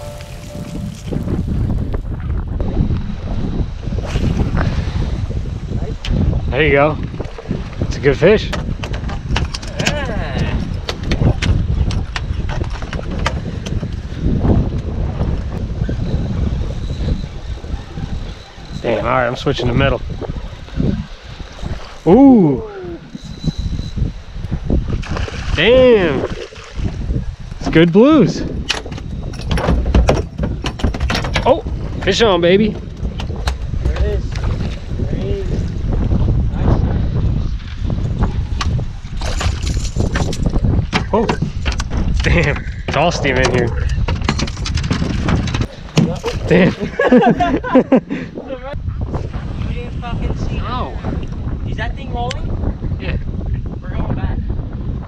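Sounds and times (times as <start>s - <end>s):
wind buffeting microphone: 0.0s - 55.0s
splashing and clatter: 25.0s - 27.0s, 39.1s - 46.6s.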